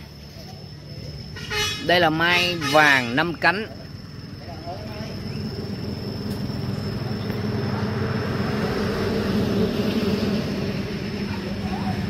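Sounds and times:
low engine hum: 3.4 - 12.0.

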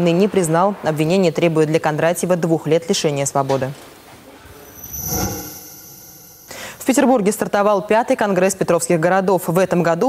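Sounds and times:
transition whoosh: 4.5 - 6.8
high steady ringing tone: 4.5 - 7.0.

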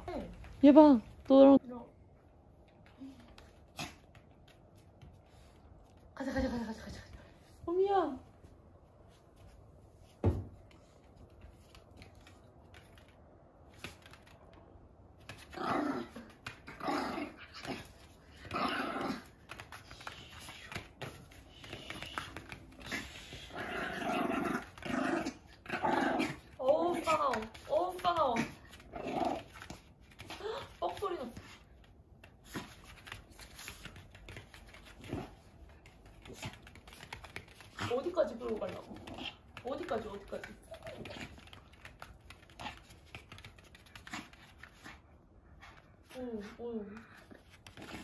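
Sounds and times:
woman's voice: 0.0 - 2.0, 7.6 - 8.3, 26.6 - 28.6, 30.3 - 31.5, 37.8 - 41.3, 46.1 - 47.2
dog claws on tiled floor: 2.4 - 7.6, 8.9 - 48.0
dog growling in play: 15.4 - 19.4, 22.8 - 27.0, 28.4 - 29.6, 38.8 - 39.5.

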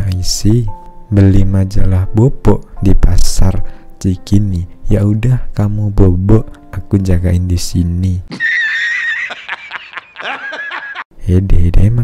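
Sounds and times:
high-pitched laughter effect: 8.3 - 11.0.

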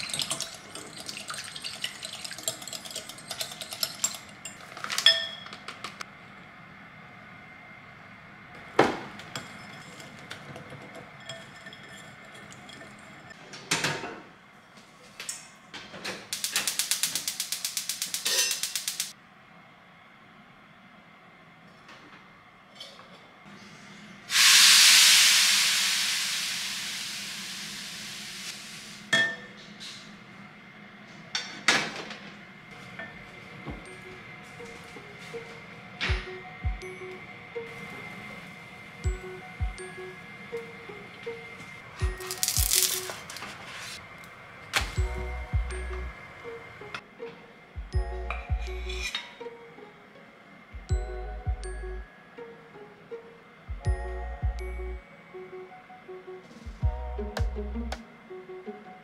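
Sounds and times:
sizzle in hot frying pan: 24.3 - 28.9, 42.2 - 43.2.

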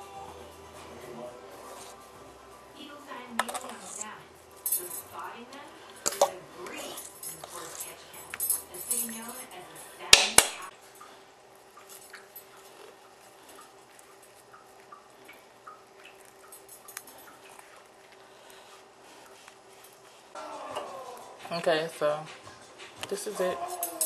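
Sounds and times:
utensil scraping a dish: 3.3 - 4.2.

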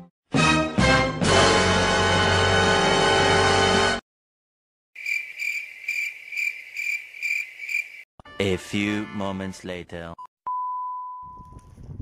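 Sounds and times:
cricket chirping: 5.0 - 8.1.

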